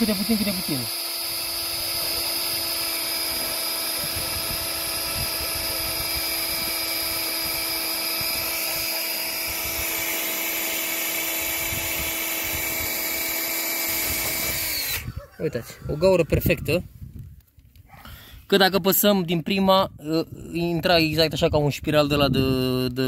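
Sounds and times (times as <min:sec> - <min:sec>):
cordless drill boring into plastic pipe: 0:00.0 - 0:15.1.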